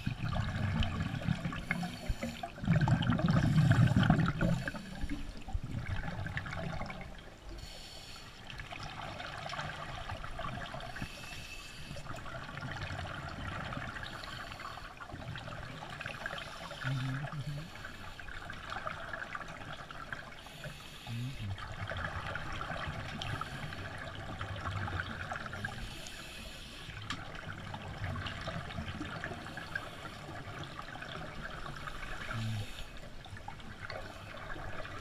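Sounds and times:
regulator breathing underwater: 1.5s - 2.7s, 3.3s - 5.5s, 7.6s - 8.4s, 20.4s - 21.5s, 23.2s - 24.0s, 25.6s - 27.0s, 31.8s - 33.1s.

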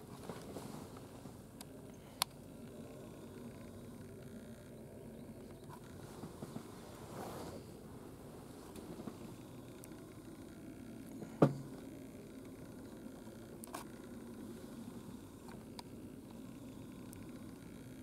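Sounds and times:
low steady hum: 0.0s - 18.0s
faint ticks: 8.7s - 10.6s, 15.4s - 18.0s.

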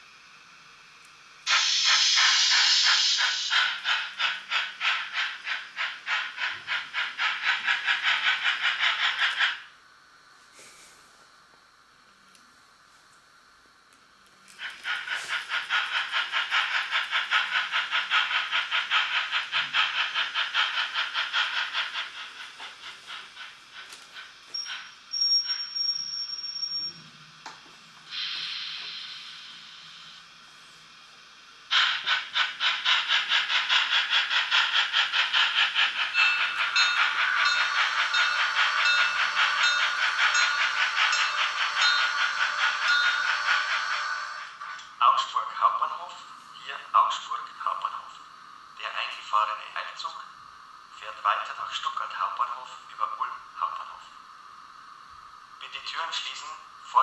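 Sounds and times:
model steam locomotive chuffing: 0.0s - 9.8s, 14.5s - 26.9s, 28.0s - 54.2s, 55.3s - 57.0s
steam hiss: 0.0s - 11.4s, 14.4s - 57.0s
high steam whistle blast: 1.5s - 3.8s, 28.1s - 30.2s, 36.1s - 44.6s.

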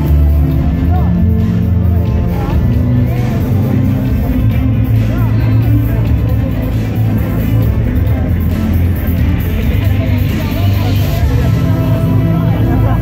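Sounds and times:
crowd voices: 0.0s - 13.0s
loud music with heavy bass: 0.0s - 13.0s.

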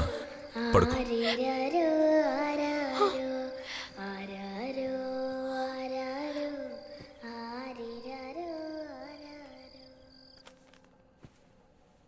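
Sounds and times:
soft wordless singing voice: 0.0s - 10.5s.

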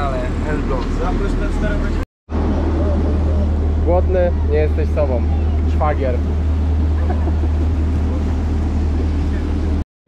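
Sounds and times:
engine running with low drone: 0.0s - 9.8s.

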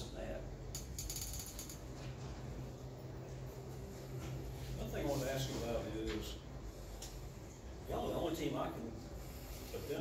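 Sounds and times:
steady low hum: 0.0s - 10.0s
ratchet-like clicks: 0.7s - 1.9s.

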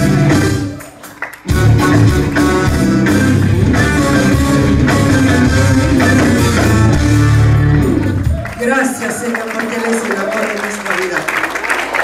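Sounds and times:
live band playing upbeat music: 0.0s - 10.7s.

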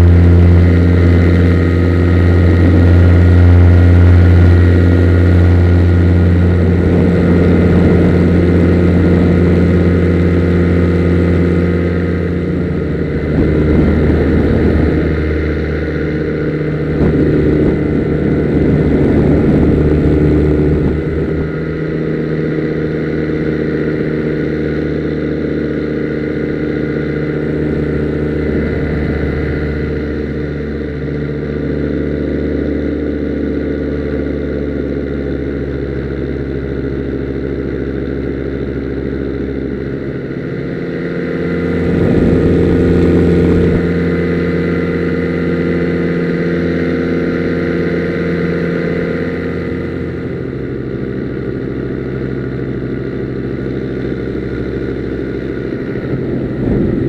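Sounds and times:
two-stroke engine running: 0.0s - 57.0s.

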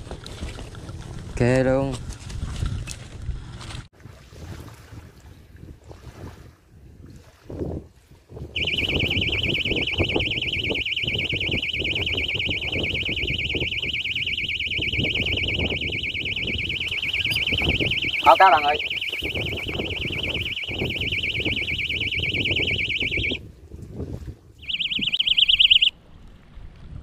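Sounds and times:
low wind noise on microphone: 0.0s - 27.0s
electronic bite alarm beeping: 8.6s - 23.4s, 24.6s - 25.9s.

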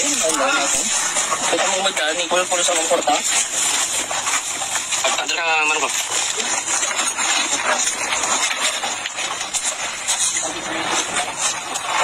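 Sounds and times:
people talking indistinctly: 0.0s - 3.5s, 5.0s - 6.8s.

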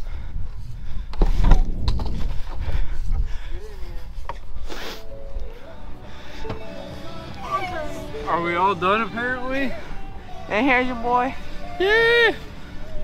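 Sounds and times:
rumbling wind on microphone: 0.0s - 4.6s
microphone handling noise: 0.4s - 3.3s
background music: 4.6s - 13.0s.

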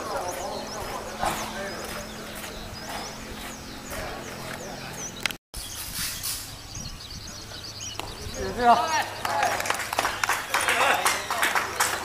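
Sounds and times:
distant voices and chatter: 0.0s - 5.3s, 6.9s - 12.0s.

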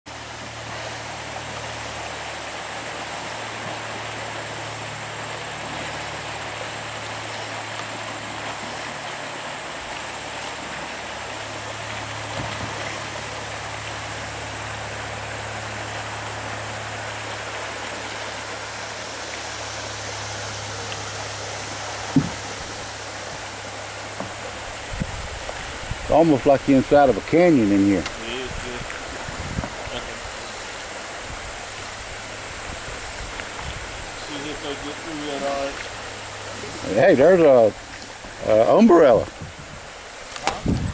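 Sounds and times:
creek water rushing over rocks: 0.1s - 40.9s.

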